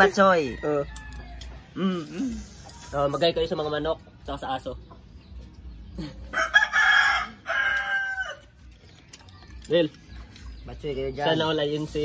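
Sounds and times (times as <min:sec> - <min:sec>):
rooster crowing: 0:06.3 - 0:08.5.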